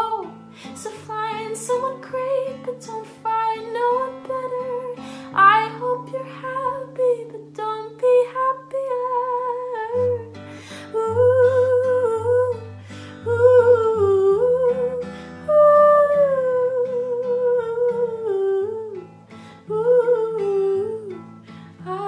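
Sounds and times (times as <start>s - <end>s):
acoustic guitar: 0.0s - 22.0s
woman humming melody: 9.0s - 19.0s.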